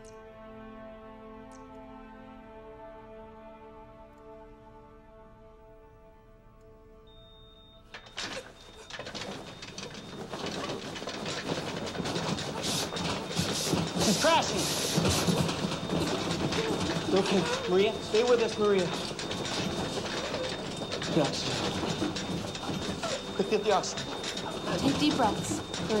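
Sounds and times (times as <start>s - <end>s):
thin steady high tone: 7.1s - 26.0s
clattering and bustle: 7.9s - 26.0s
raised indistinct voices: 9.1s - 26.0s.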